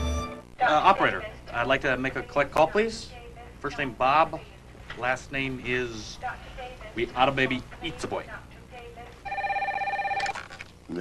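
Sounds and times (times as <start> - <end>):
telephone ringing: 9.2 - 10.4.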